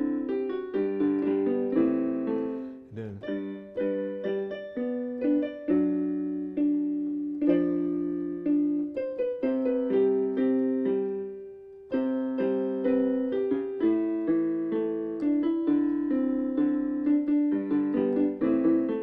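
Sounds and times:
electronic keyboard piano chords: 0.0s - 19.0s.

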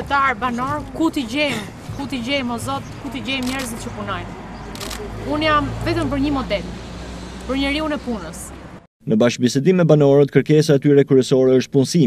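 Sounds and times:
woman talking: 0.0s - 4.3s, 5.2s - 6.7s, 7.4s - 8.6s.

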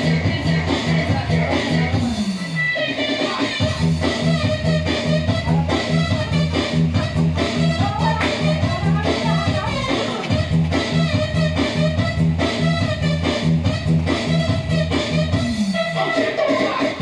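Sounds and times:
upbeat music with steady beat: 0.0s - 17.0s
person singing: 15.8s - 17.0s.

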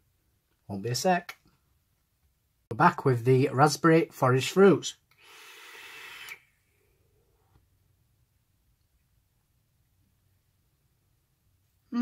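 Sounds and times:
breathy rush of vape inhale: 5.2s - 6.6s.

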